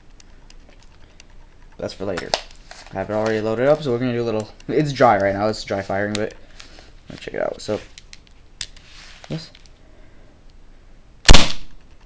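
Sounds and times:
revolver dry-fire shot: 0:11.2 - 0:11.8.

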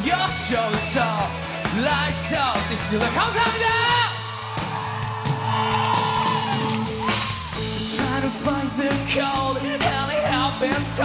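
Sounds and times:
drum kit beat: 0:00.0 - 0:11.0
live rock band playing: 0:00.0 - 0:11.0.

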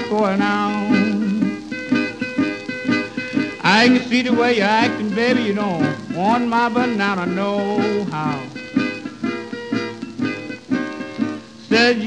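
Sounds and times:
person singing: 0:00.0 - 0:01.7, 0:03.3 - 0:08.6, 0:11.6 - 0:12.0
plucked acoustic guitar: 0:00.0 - 0:12.0.

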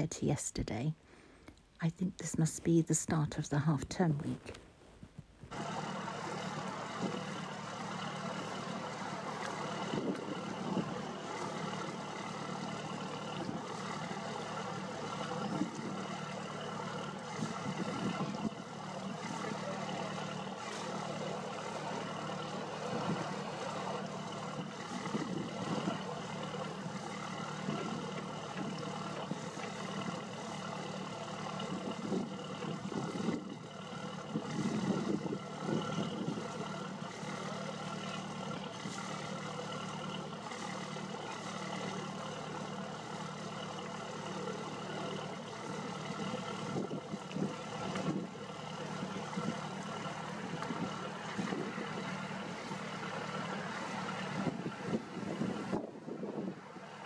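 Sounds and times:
boat engine humming: 0:00.0 - 0:57.0.

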